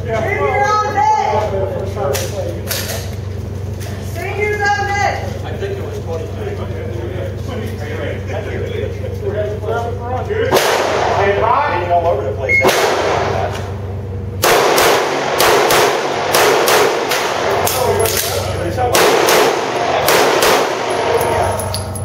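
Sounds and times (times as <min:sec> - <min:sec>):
handgun shots echoing: 0:12.6 - 0:13.6, 0:14.4 - 0:22.0.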